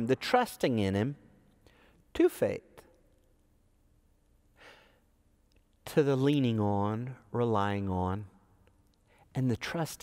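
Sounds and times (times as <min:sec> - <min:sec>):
man speaking: 0:00.0 - 0:01.3, 0:02.1 - 0:03.0, 0:05.8 - 0:08.4, 0:09.3 - 0:10.0
faint room hum: 0:00.0 - 0:10.0
man's soft breath: 0:04.6 - 0:05.2.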